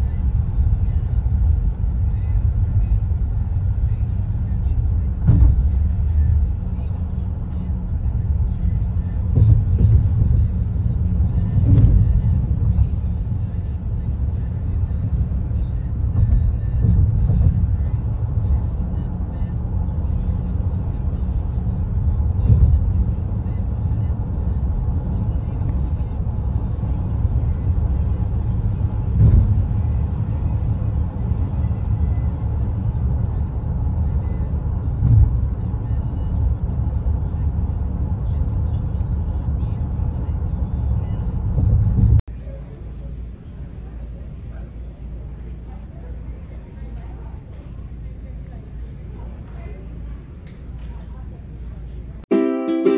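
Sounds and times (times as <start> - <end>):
road and tyre rumble in car: 0.0 - 52.3
car bumps: 5.2 - 6.0, 29.2 - 29.8.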